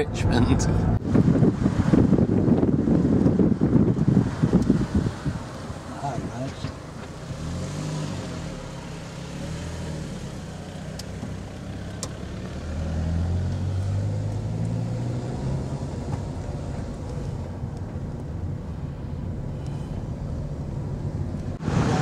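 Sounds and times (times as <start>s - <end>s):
wind buffeting microphone: 0.0s - 6.5s
car engine hum: 0.0s - 22.0s
road noise: 0.0s - 22.0s.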